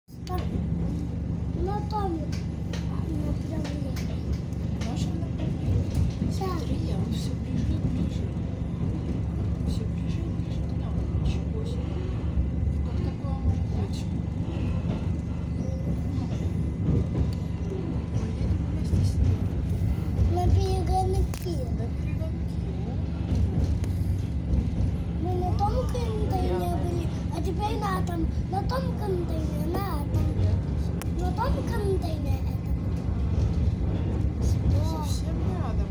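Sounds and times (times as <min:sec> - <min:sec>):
electric train humming: 0:00.1 - 0:35.9
voices talking: 0:00.1 - 0:35.9.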